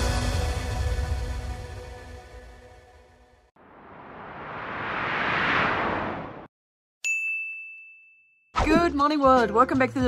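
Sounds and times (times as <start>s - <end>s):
bell-like chime ding: 7.0s - 8.5s.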